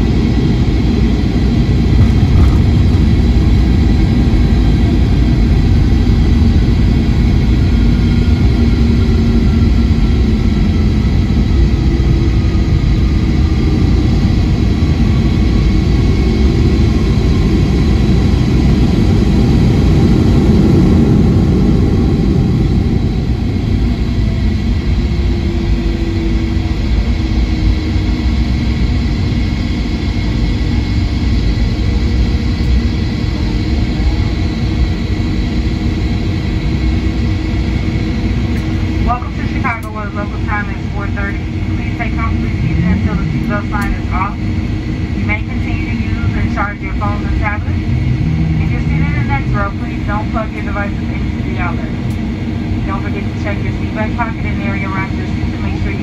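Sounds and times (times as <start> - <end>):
jet engines low rumble: 0.0 - 56.0.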